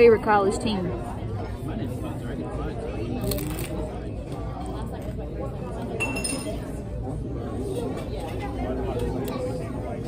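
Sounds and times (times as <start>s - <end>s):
diners chattering: 0.0s - 10.0s
tableware clinking: 5.9s - 6.8s.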